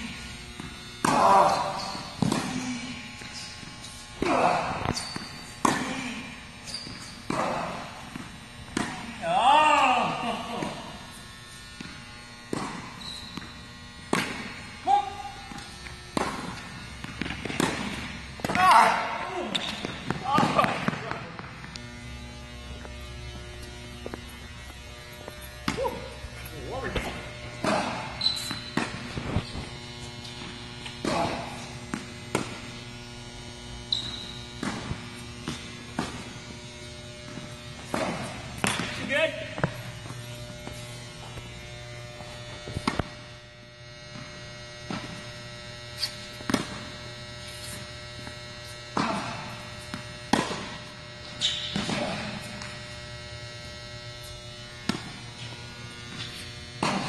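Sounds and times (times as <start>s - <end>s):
steady low hum: 0.0s - 57.0s
rackets striking tennis ball: 0.5s - 11.1s, 11.8s - 22.1s, 25.4s - 29.7s, 30.3s - 32.8s, 33.9s - 36.4s, 37.2s - 41.5s, 42.6s - 43.2s, 46.3s - 46.9s, 48.9s - 52.7s, 54.8s - 55.5s, 56.1s - 57.0s
tennis ball bouncing: 0.6s - 2.7s, 4.8s - 5.9s, 6.7s - 9.2s, 11.8s - 14.6s, 15.4s - 21.9s, 25.4s - 29.2s, 30.3s - 32.8s, 34.0s - 36.4s, 37.2s - 41.4s, 42.8s - 43.2s, 46.4s - 46.9s, 49.9s - 50.9s, 54.8s - 55.5s, 56.1s - 57.0s.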